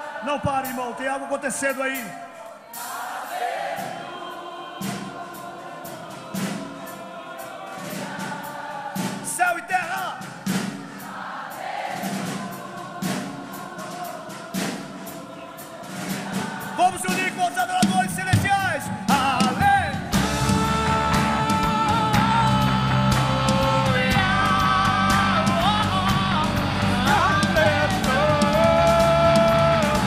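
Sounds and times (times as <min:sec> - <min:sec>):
gospel band playing: 0:00.0 - 0:30.0
choir singing sustained chords: 0:02.7 - 0:09.3, 0:10.2 - 0:17.4, 0:18.9 - 0:30.0
slow drum beat: 0:02.7 - 0:30.0
solo voice singing: 0:18.9 - 0:30.0.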